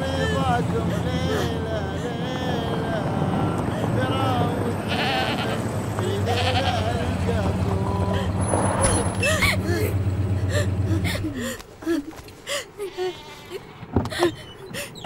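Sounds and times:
low engine hum: 0.0 - 12.3
sheep bleating: 4.0 - 8.1, 12.8 - 13.8.

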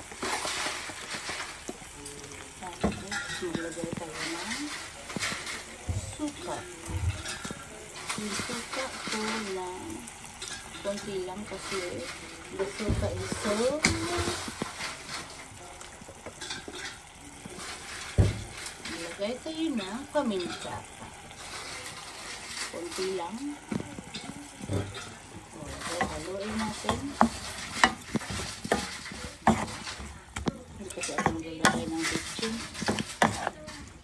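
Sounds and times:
food sizzling in a pan: 0.0 - 34.0.

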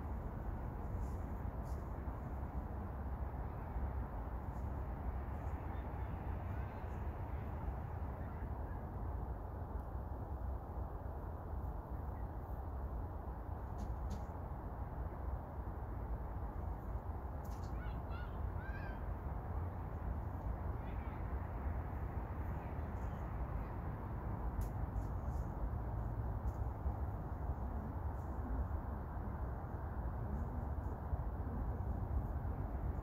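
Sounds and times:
wind rumble on microphone: 0.0 - 33.0.

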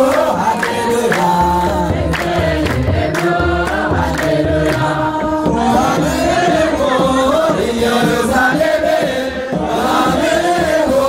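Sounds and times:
congregation singing a hymn: 0.0 - 11.0
steady drum beat: 0.0 - 11.0.

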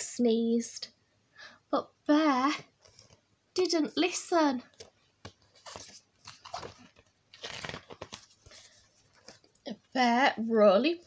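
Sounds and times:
book pages rustling: 2.8 - 3.2, 4.6 - 9.7.

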